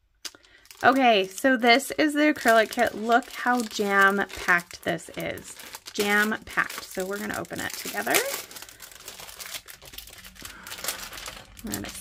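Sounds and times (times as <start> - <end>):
plastic bag crinkling: 0.3 - 12.0.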